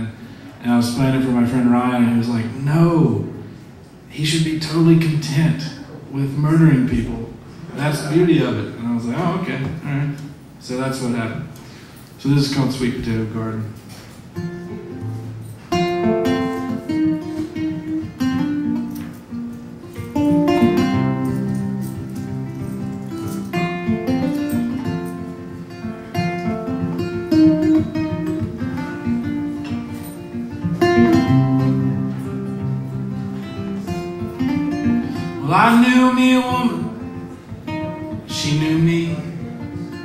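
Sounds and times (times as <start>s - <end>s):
classical guitar playing: 13.8s - 40.0s.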